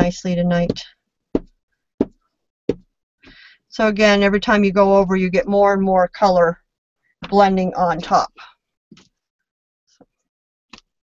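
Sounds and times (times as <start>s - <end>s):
wooden block dull knocks: 1.4s - 2.9s.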